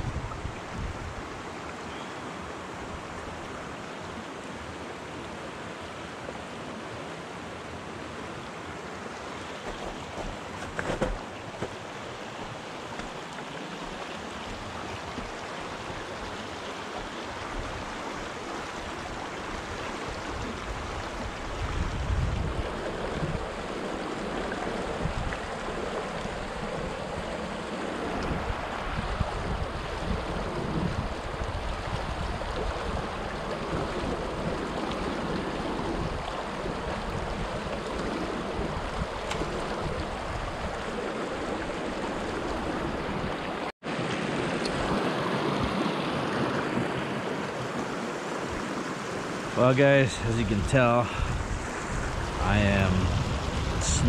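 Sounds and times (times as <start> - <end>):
wind buffeting microphone: 0.0 - 1.2, 20.1 - 23.8, 24.4 - 43.5, 50.1 - 54.0
river rushing over rocks: 0.2 - 54.0.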